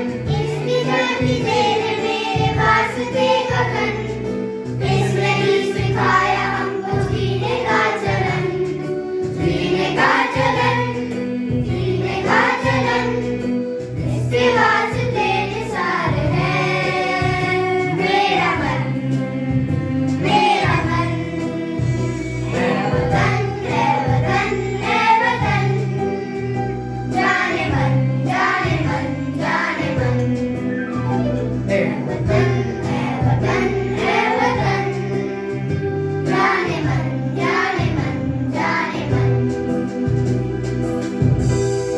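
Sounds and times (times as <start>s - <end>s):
children's choir singing: 0.0s - 40.2s
electronic keyboard: 0.0s - 41.9s
man singing: 22.6s - 23.2s.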